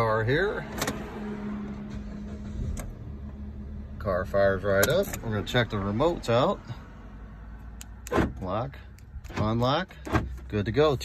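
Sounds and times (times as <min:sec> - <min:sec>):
car engine starting and running: 0:00.0 - 0:11.0.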